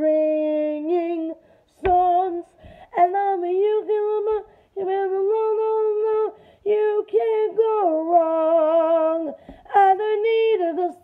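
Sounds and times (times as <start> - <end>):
woman singing a cappella: 0.0 - 11.0.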